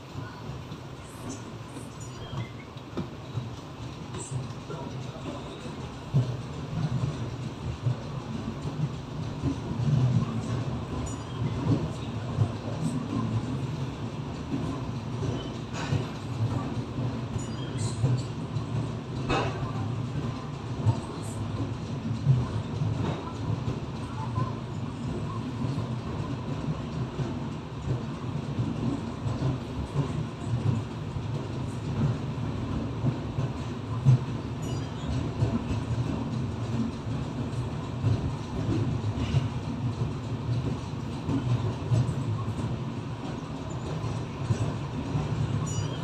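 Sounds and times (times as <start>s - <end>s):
train coach rumbling: 0.0s - 46.0s.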